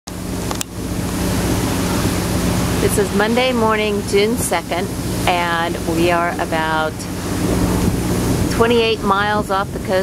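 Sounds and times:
low steady drone: 0:00.1 - 0:10.0
water rushing along boat hull: 0:00.1 - 0:10.0.

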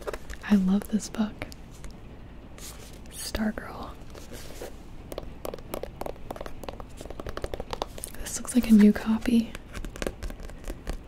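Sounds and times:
fingers handling a paperback book: 0:00.0 - 0:01.6, 0:04.0 - 0:11.0.

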